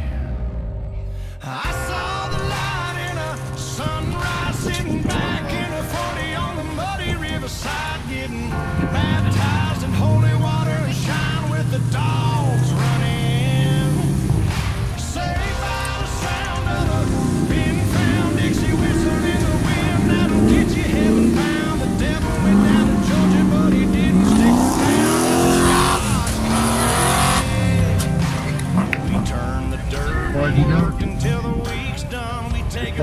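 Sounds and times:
spectators' voices: 1.4s - 33.0s
off-road vehicle engine revving: 2.5s - 33.0s.

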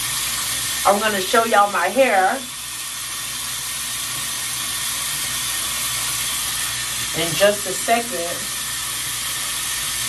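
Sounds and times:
water tap running into sink: 0.0s - 10.0s.

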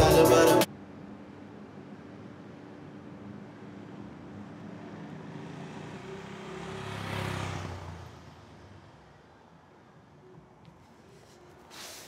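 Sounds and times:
car passing by: 4.4s - 9.2s.

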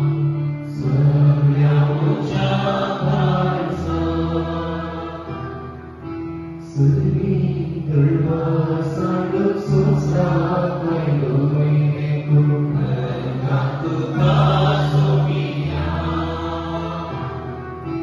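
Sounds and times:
sustained keyboard chords: 0.0s - 18.0s
person singing a chant: 0.6s - 5.5s, 6.6s - 17.5s.

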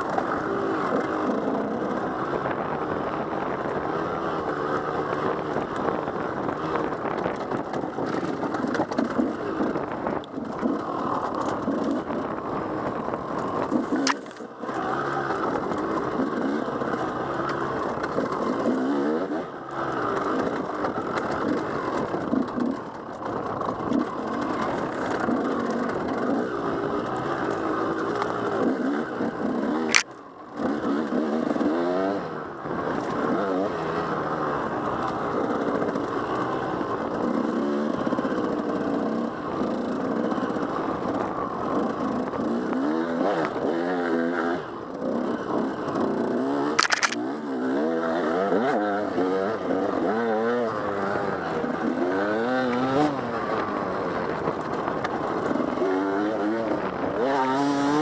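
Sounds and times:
dirt bike engine revving: 0.0s - 58.0s
sharp click: 14.0s - 14.4s, 29.9s - 30.2s, 46.8s - 47.2s.

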